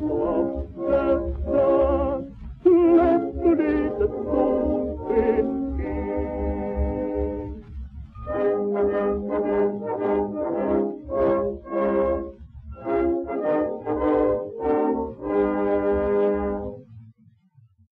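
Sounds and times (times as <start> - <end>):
brass-led orchestra chords: 0.0 - 7.6, 8.2 - 16.8
record disc rumble: 0.0 - 16.8.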